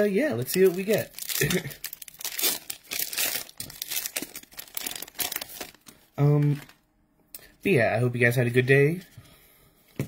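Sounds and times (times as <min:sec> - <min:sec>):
foil wrapper tearing and crinkling: 0:00.4 - 0:06.0.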